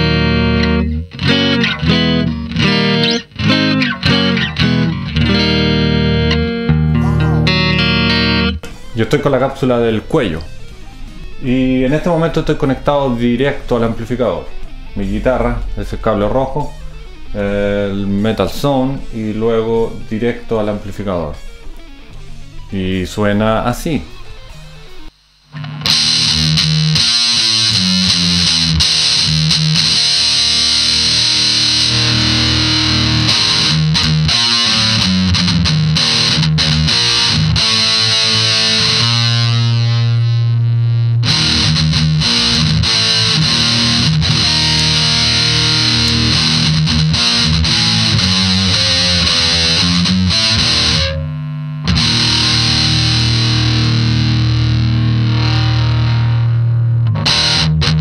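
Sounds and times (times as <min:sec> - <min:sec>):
distorted electric guitar riffs: 0:00.0 - 0:58.0.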